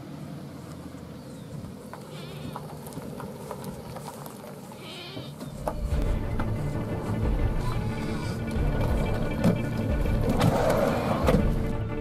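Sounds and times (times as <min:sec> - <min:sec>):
van rolling over gravel: 0:00.0 - 0:12.0
tyres crunching on gravel: 0:00.4 - 0:11.8.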